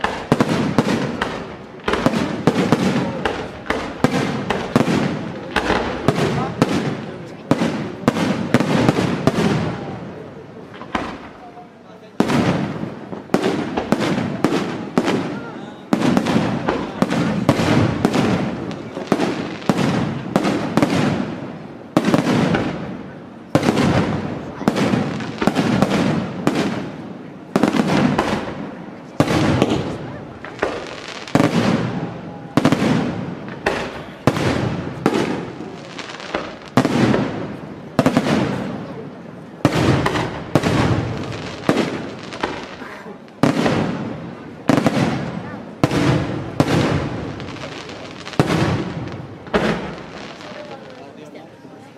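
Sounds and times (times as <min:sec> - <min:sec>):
firework shells bursting: 0:27.6 - 0:38.7, 0:45.8 - 0:50.5.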